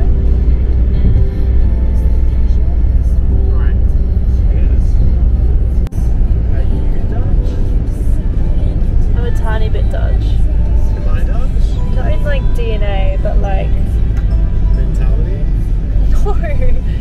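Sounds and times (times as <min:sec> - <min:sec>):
car cabin road and engine rumble: 0:00.0 - 0:17.0
music: 0:00.0 - 0:17.0.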